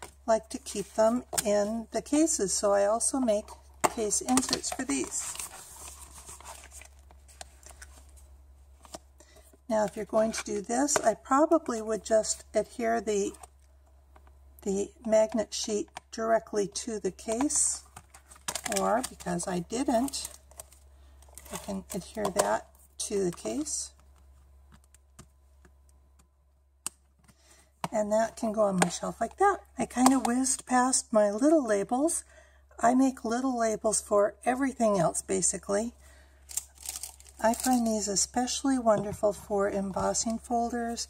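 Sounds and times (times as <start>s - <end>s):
plastic packaging crinkling: 18.0s - 22.0s, 36.5s - 37.9s
faint clicks and taps: 24.0s - 28.0s.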